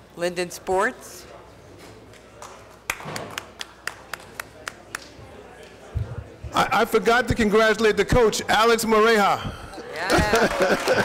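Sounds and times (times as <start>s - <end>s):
person clapping hands: 2.4s - 5.2s.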